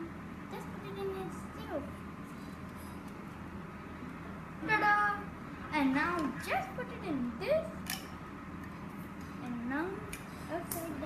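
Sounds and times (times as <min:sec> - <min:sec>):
child's voice: 0:00.0 - 0:02.0, 0:04.6 - 0:07.8, 0:09.4 - 0:11.0
low room hum: 0:00.0 - 0:11.0.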